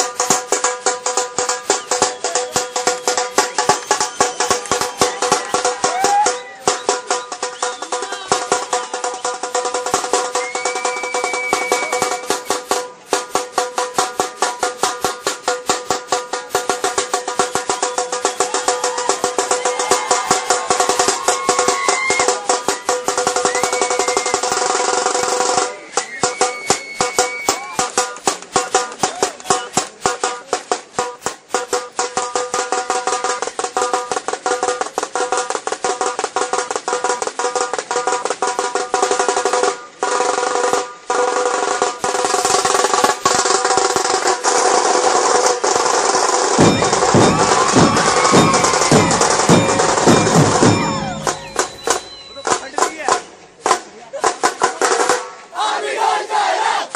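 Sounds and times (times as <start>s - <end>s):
bass drum beats: 0.0s - 10.6s, 46.5s - 55.0s
held melodic tones: 0.0s - 44.1s, 45.7s - 53.7s
snare drums rolling: 0.0s - 56.9s.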